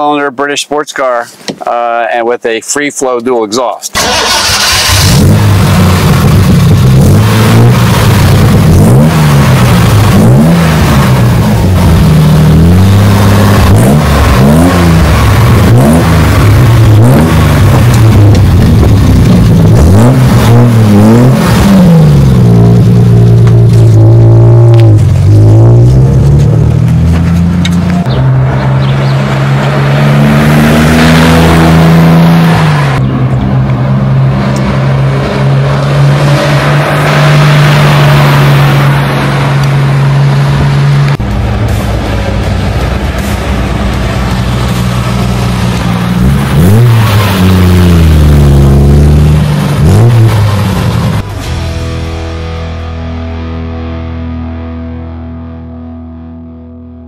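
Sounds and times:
car engine revving: 3.9 - 57.0.

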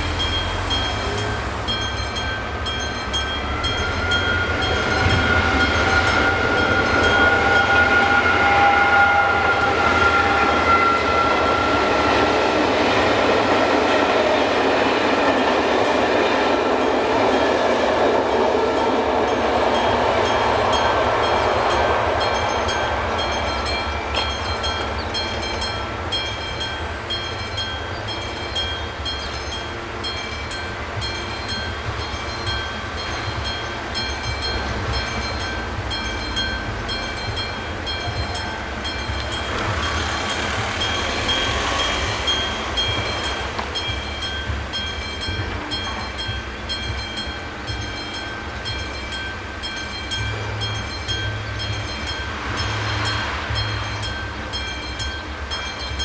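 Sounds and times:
level-crossing warning bell dinging: 0.0 - 56.0
train rumbling: 0.0 - 56.0.

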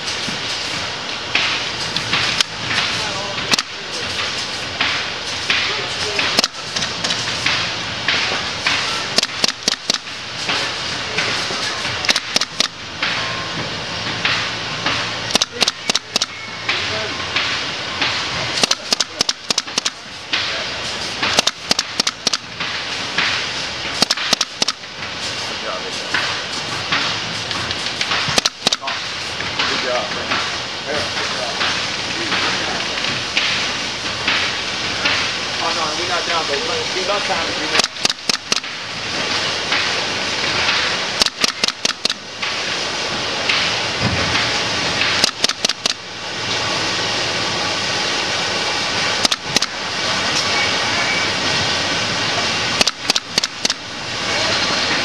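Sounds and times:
factory background noise: 0.0 - 55.0
pneumatic staple gun firing: 8.7 - 10.1, 12.0 - 12.8, 18.6 - 20.0, 21.2 - 22.5, 24.0 - 24.8, 28.0 - 29.0, 37.8 - 38.8, 41.2 - 42.2, 45.1 - 46.0, 52.8 - 53.8.

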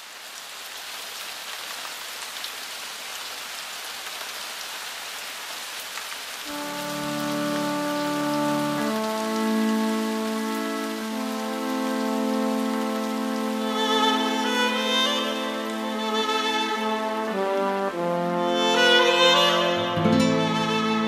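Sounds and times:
rain falling: 0.0 - 21.0
backing track chords: 6.5 - 21.0
electric violin: 6.5 - 21.0.

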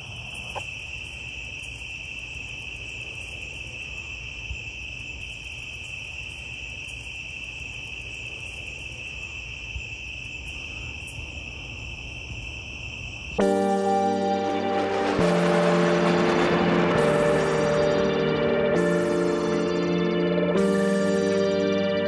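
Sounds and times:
crickets trilling: 0.0 - 22.0.

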